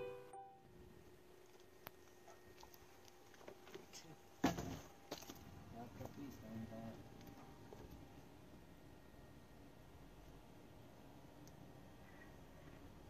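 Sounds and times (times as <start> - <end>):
faint background noise: 0.0 - 13.0.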